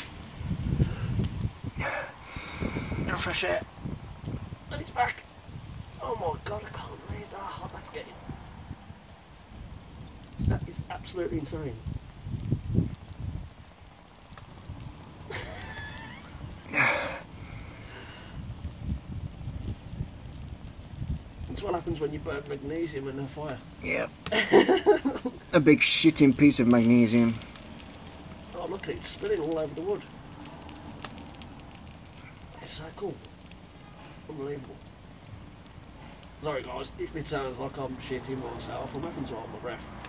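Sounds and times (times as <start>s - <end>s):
fire crackling faintly: 0.0s - 40.0s
low rumbling surges: 0.0s - 40.0s
steady low rush: 13.7s - 40.0s.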